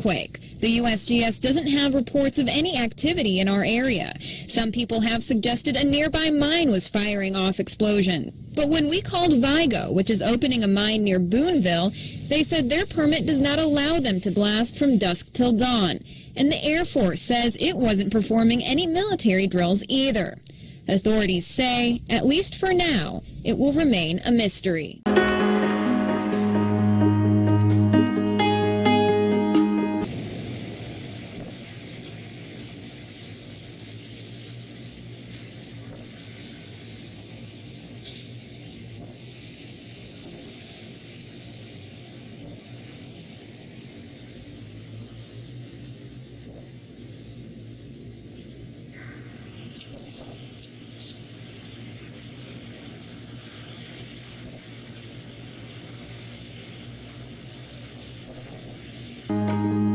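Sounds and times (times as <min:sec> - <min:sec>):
low city rumble: 0:00.0 - 0:25.1, 0:26.4 - 0:59.9
faint hiss: 0:00.0 - 0:59.9
music: 0:25.1 - 0:30.1, 0:59.3 - 0:59.9.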